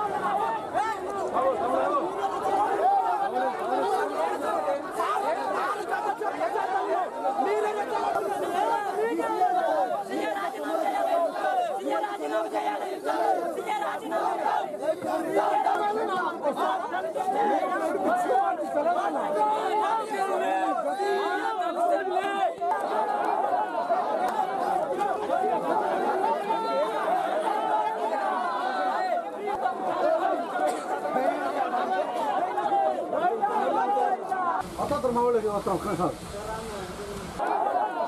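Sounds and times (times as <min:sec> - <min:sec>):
crowd of men shouting: 0:00.0 - 0:38.0.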